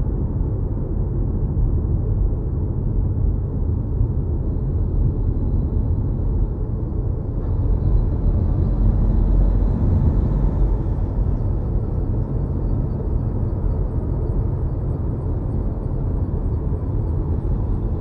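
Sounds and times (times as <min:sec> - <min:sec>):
road and tyre rumble: 0:00.0 - 0:18.0.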